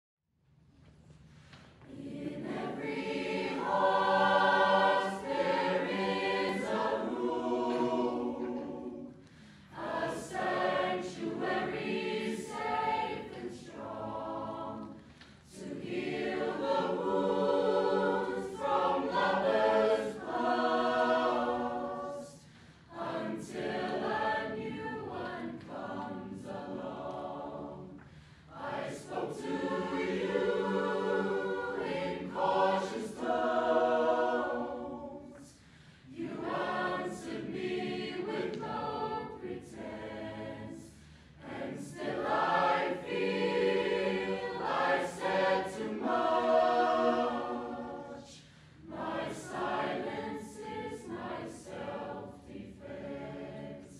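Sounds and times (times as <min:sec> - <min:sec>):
choir of children singing: 0:01.8 - 0:53.9.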